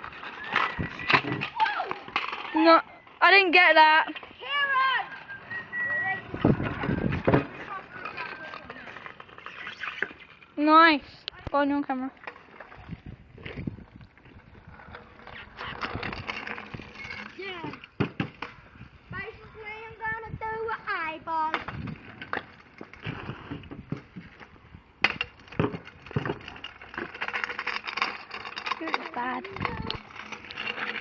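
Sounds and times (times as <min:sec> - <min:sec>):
scooter clacking on asphalt: 0:00.0 - 0:09.8, 0:21.3 - 0:31.0.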